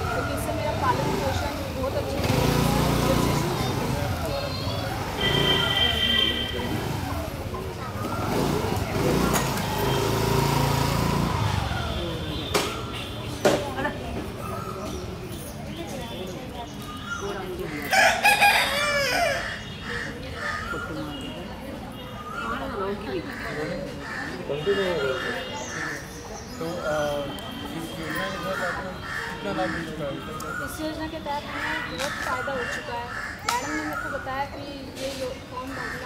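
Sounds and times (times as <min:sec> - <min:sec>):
faint distant voices: 0:00.0 - 0:36.0
motor scooter engine running: 0:00.7 - 0:12.3
rooster crowing: 0:17.9 - 0:19.6.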